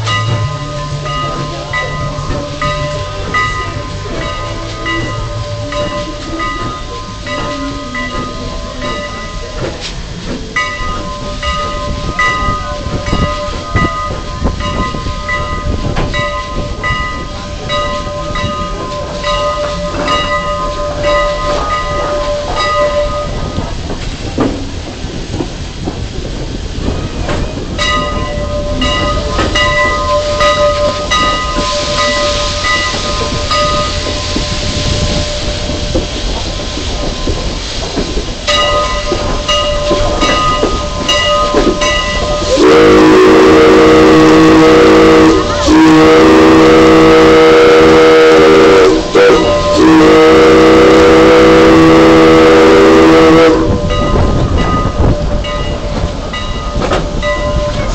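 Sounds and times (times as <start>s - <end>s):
train wheels rumbling and clanking: 0.0s - 57.9s
bell ringing: 10.6s - 23.6s, 27.8s - 36.0s, 38.5s - 42.7s, 53.9s - 57.9s.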